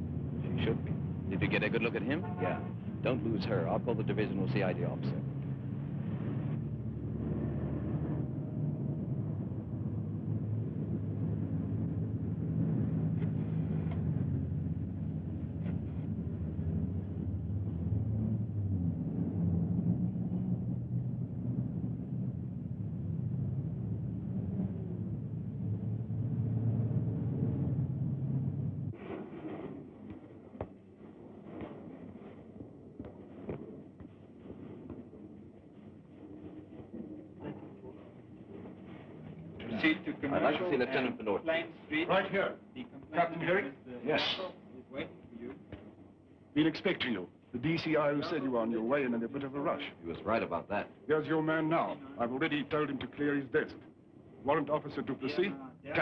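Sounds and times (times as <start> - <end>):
street traffic rumble: 0.0 - 56.0.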